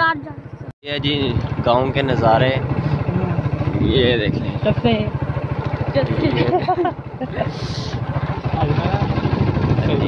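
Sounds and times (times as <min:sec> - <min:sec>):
motorcycle engine running: 0:00.0 - 0:10.0
voices: 0:00.0 - 0:10.0.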